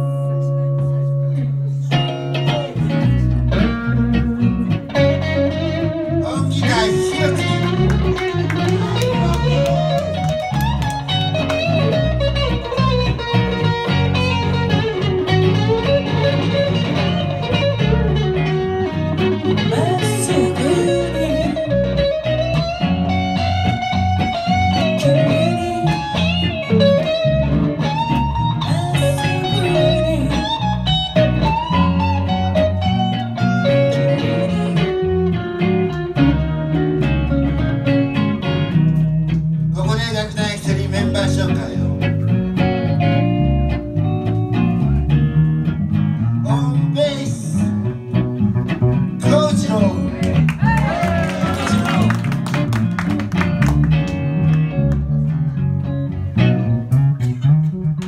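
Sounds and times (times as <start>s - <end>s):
electric guitar melody: 0.0s - 58.0s
live band playing: 0.0s - 58.0s.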